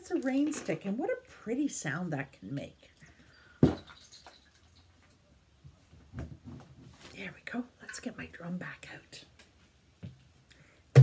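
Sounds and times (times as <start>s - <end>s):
rustling and handling noises: 3.0s - 8.1s.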